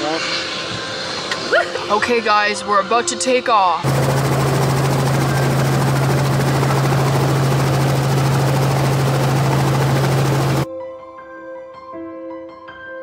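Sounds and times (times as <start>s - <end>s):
helicopter running: 0.0s - 10.7s.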